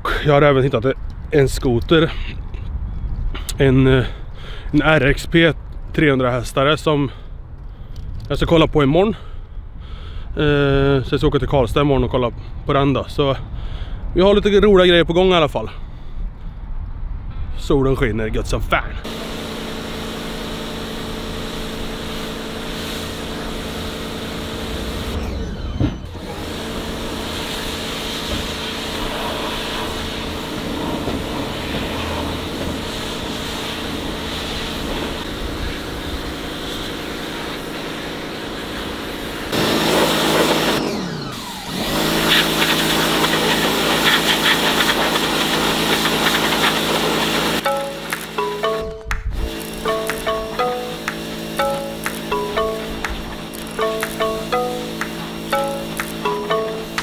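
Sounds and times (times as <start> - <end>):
pressure washer spraying wood: 19.1 - 25.2, 26.2 - 40.9, 41.6 - 48.4
background music with sustained chords: 47.6 - 57.0.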